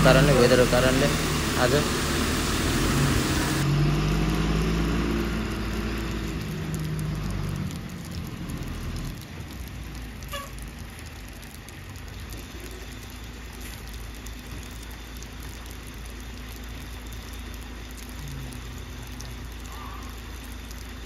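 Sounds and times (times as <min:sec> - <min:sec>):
diesel truck engine driving off: 0:00.0 - 0:09.6.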